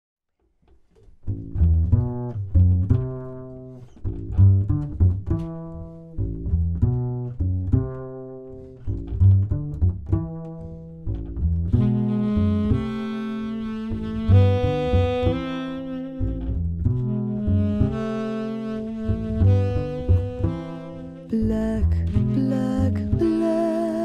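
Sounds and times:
double bass plucked notes: 1.0 - 24.0.

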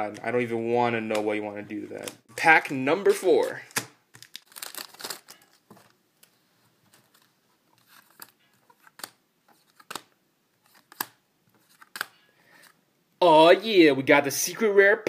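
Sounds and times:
foil pack crinkling: 3.4 - 6.0
cards being flicked: 8.1 - 10.1.

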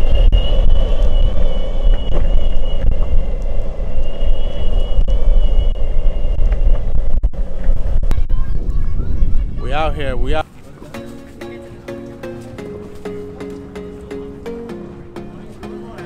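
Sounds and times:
skateboard wheels rumbling on asphalt: 0.0 - 9.6.

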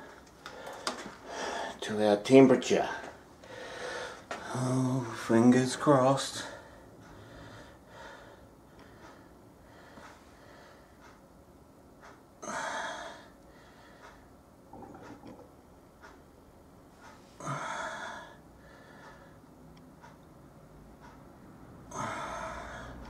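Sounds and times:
person breathing: 0.0 - 1.8, 3.4 - 4.9, 6.4 - 10.9, 12.4 - 14.2, 17.4 - 19.4, 21.9 - 23.0.

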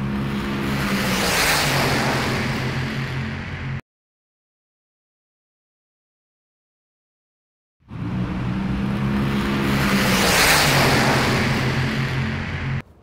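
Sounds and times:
car passing by: 0.0 - 3.8, 7.9 - 12.8.

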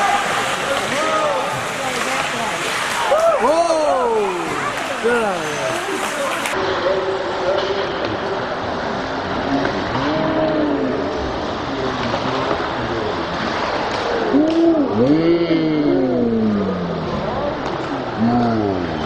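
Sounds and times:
slowed deep gliding voices: 8.2 - 19.0.

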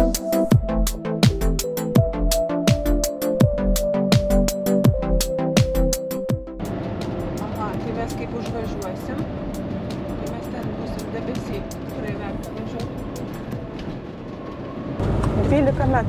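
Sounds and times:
road and engine noise: 6.5 - 16.0.

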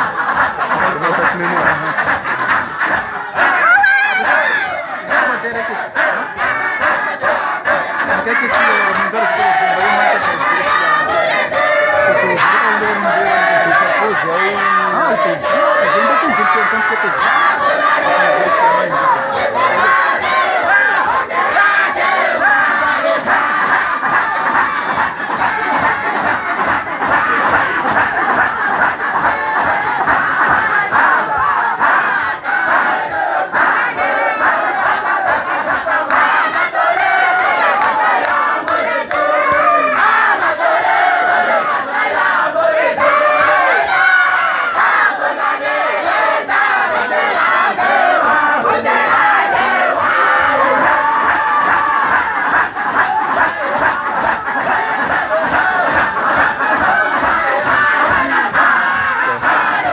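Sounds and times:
men chanting loudly together: 0.0 - 59.9.

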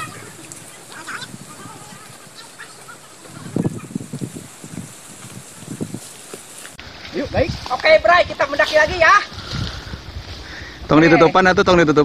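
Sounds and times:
footsteps in undergrowth: 0.0 - 11.0
leaves and brush rustling: 0.0 - 12.0.

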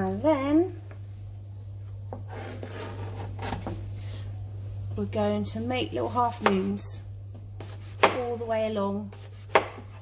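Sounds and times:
steady low hum: 0.0 - 10.0
knife slicing leek: 7.6 - 8.3, 9.1 - 10.0.

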